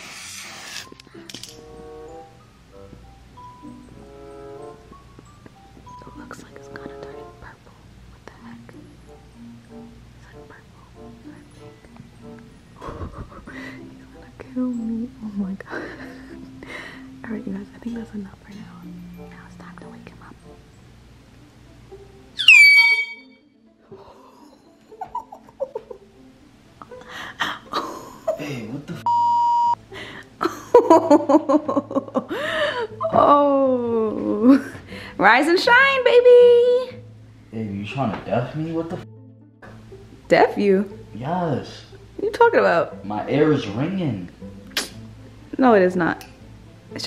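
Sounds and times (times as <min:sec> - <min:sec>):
soft background music: 0:00.0 - 0:47.0
high-pitched censor bleep: 0:22.4 - 0:23.4, 0:29.1 - 0:29.8.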